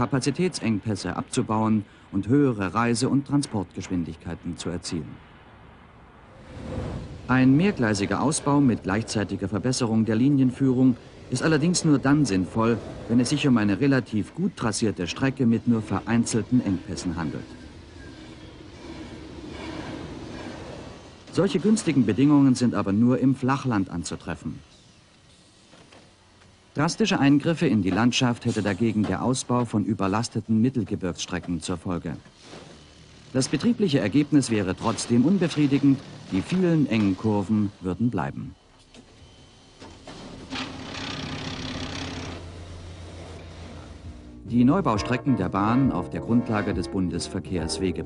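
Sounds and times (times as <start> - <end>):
continuous hiss: 0.0 - 45.3
train wheels rumbling on rails: 6.4 - 23.3.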